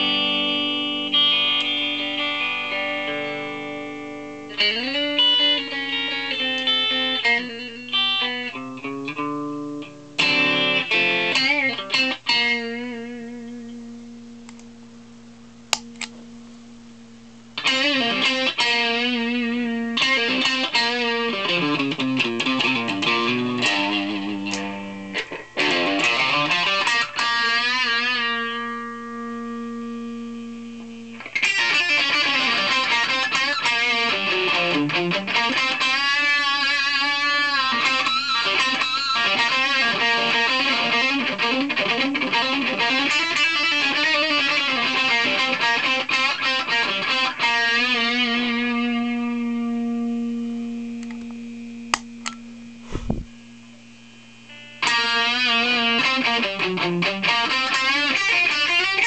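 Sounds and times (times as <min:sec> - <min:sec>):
distorted electric guitar lead: 0:00.0 - 0:59.0.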